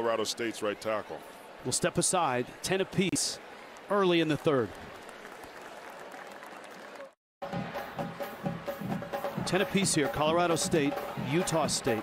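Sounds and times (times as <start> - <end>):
stadium crowd hum: 0.0 - 12.0
music: 7.4 - 12.0.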